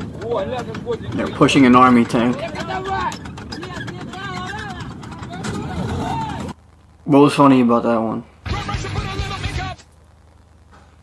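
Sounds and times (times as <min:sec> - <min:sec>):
men calling out: 0:00.0 - 0:06.6
tracked vehicle engine running: 0:00.0 - 0:06.6.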